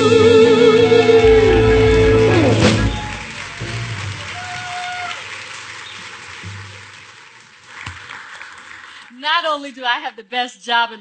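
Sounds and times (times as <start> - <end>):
band final chord: 0.0 - 3.9
audience applause: 1.2 - 9.4.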